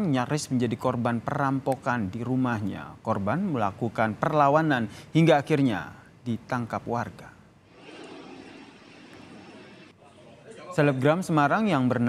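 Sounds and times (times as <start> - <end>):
outdoor background hiss and hum: 0.0 - 12.0.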